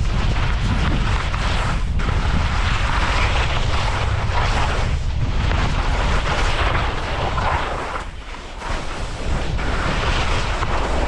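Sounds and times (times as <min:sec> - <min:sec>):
low rumble: 0:00.0 - 0:11.0
ski edges scraping snow: 0:00.0 - 0:11.0
wind rushing over microphone: 0:00.0 - 0:11.0.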